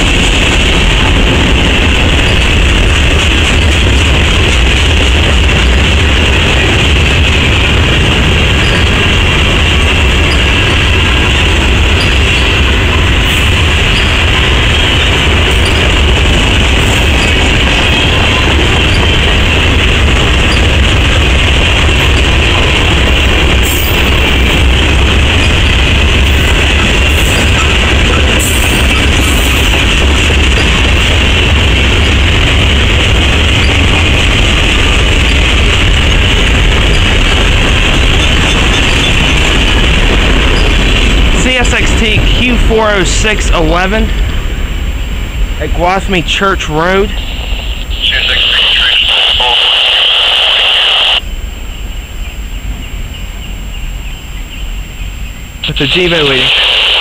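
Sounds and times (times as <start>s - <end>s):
freight train wheels rumbling: 0.0s - 57.0s.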